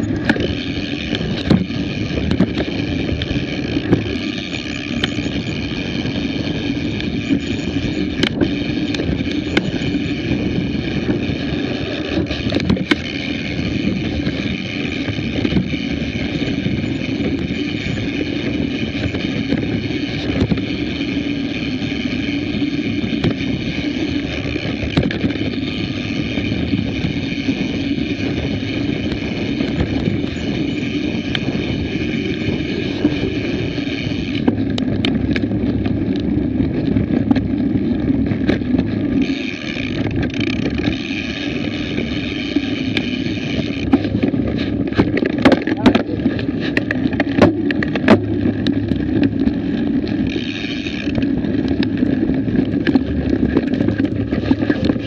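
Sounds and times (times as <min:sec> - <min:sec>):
mountain bike riding rumble and rattle: 0:00.0 - 0:55.0
wind on microphone: 0:00.0 - 0:55.0.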